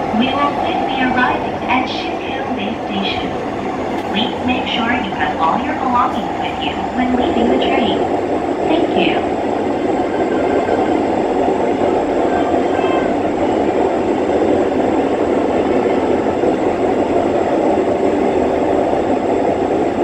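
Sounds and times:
train wheels rumbling on rails: 0.0s - 20.0s.

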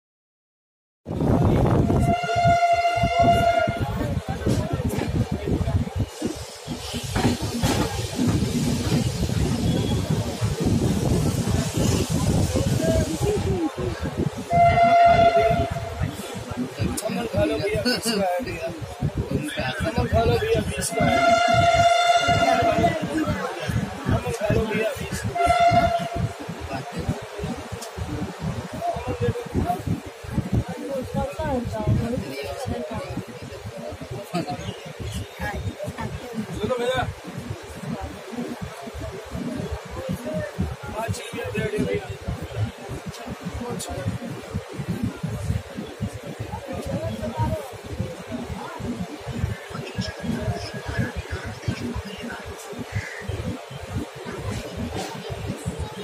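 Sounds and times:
train rumbling and clattering: 1.1s - 56.0s
train horn: 1.8s - 4.1s, 14.4s - 16.2s, 20.9s - 23.0s, 25.3s - 26.3s.

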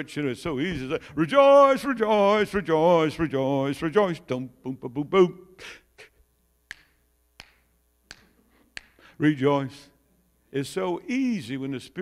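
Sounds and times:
finger snaps: 6.7s - 9.1s.

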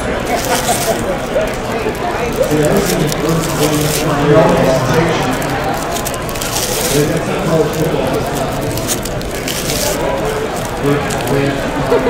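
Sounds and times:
background voices: 0.0s - 12.0s
cards sliding and rustling: 0.2s - 12.0s.

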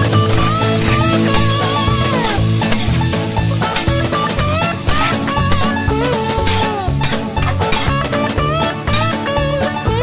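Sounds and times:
background music: 0.0s - 10.0s
food sizzling in a wok: 0.0s - 10.0s
spatula scraping a wok: 0.1s - 9.3s.

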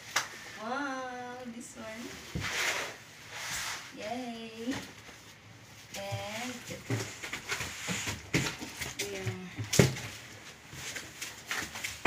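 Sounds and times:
bubble wrap rustling: 1.9s - 12.0s.

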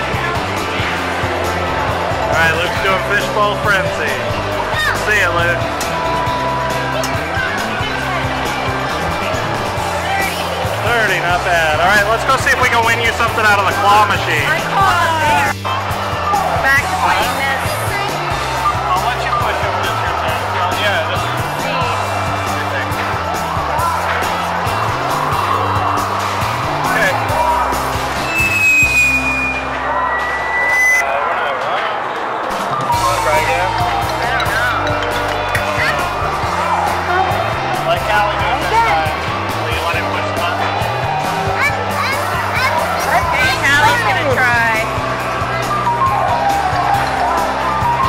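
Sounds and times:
background music with bass line: 0.0s - 31.0s, 32.9s - 48.0s
crowd chatter: 0.0s - 48.0s
short high electronic tones: 28.2s - 31.1s.

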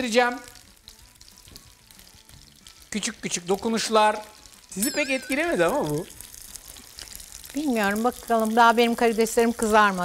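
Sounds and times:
shrimp sizzling in oil: 0.0s - 10.0s.

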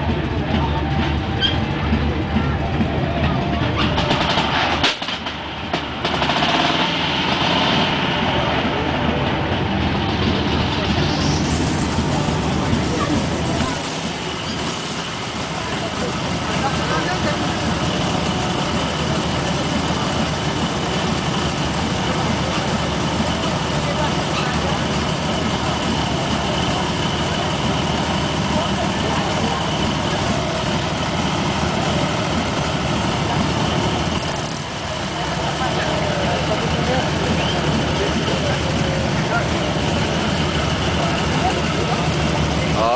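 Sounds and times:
motorcycle engine idling: 0.0s - 42.9s.

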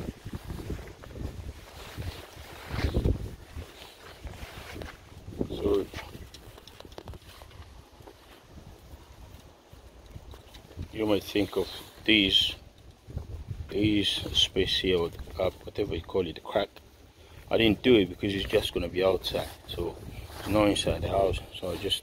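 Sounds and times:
wind rumble on microphone: 0.0s - 16.2s, 17.4s - 21.5s.

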